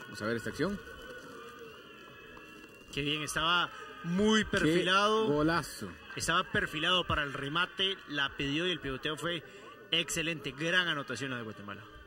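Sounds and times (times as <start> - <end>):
faint stadium ambience: 0.0 - 12.0.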